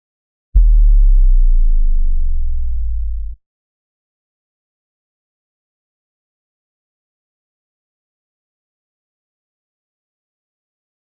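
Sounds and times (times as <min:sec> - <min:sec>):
deep struck tone: 0:00.6 - 0:03.4.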